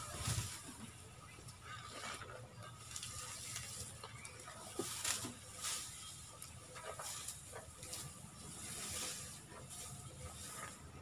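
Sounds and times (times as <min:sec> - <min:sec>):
cut grass rustling and crackling: 0:00.0 - 0:11.0.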